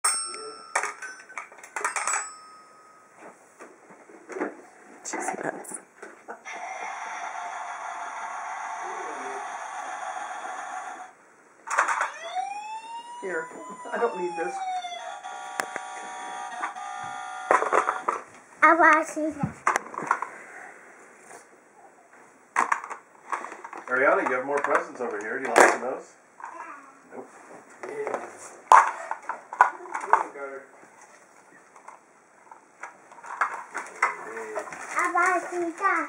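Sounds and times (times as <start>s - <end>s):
toy xylophone notes ringing: 0.0s - 3.1s
toy siren buzzing tone: 6.4s - 11.1s, 11.9s - 18.1s.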